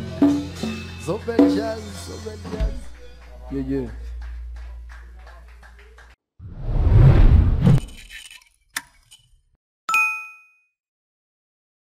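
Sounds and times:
bright bell ding: 0:09.9 - 0:10.7.

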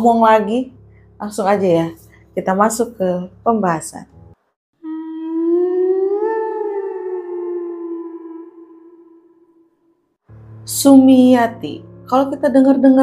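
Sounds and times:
eerie sustained tone: 0:04.8 - 0:09.9.

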